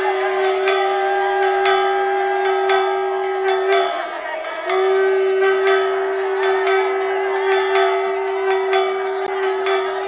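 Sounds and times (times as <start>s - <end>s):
long held wind note: 0.0s - 10.0s
metal bell ringing: 0.0s - 10.0s.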